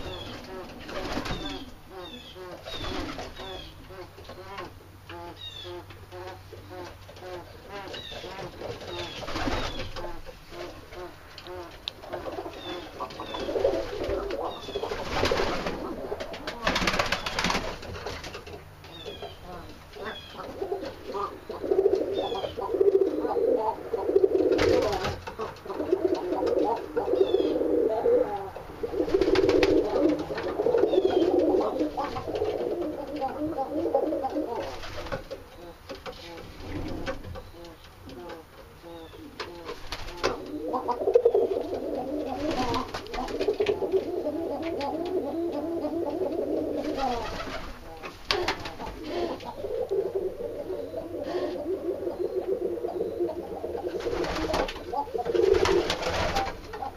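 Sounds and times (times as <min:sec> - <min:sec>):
pigeons cooing: 0:00.0 - 0:56.9
wings flapping: 0:00.2 - 0:01.7, 0:02.7 - 0:03.6, 0:08.2 - 0:10.8, 0:12.1 - 0:18.6, 0:24.3 - 0:26.9, 0:28.9 - 0:33.6, 0:34.3 - 0:35.4, 0:39.4 - 0:45.1, 0:46.1 - 0:50.2, 0:53.8 - 0:56.9.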